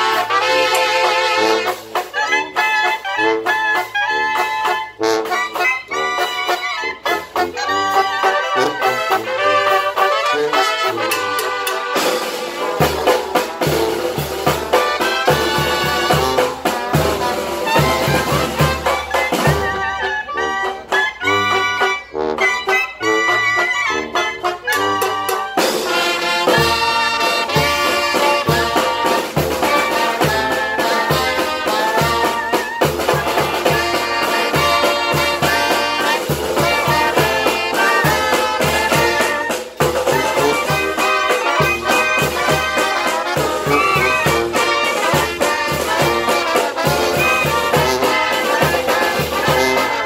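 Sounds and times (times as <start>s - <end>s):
brass band playing: 0.0s - 50.0s.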